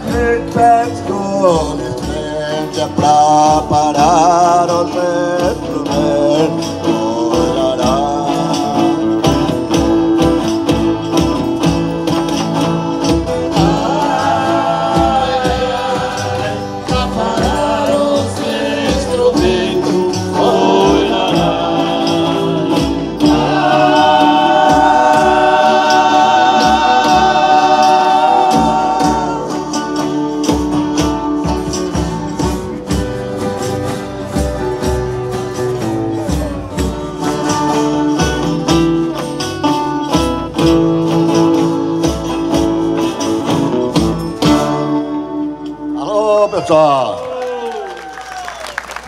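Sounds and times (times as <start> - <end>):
group singing in harmony: 0.0 - 32.1
hand percussion: 0.0 - 46.1
strummed acoustic guitars: 0.0 - 47.1.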